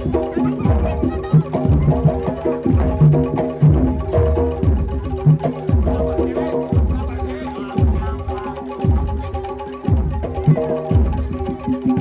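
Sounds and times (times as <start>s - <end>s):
tuned metal percussion: 0.0s - 12.0s.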